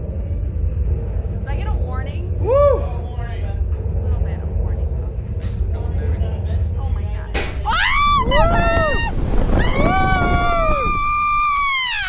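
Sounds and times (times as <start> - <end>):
low wind rumble: 0.0 - 12.0
people screaming: 7.6 - 12.0.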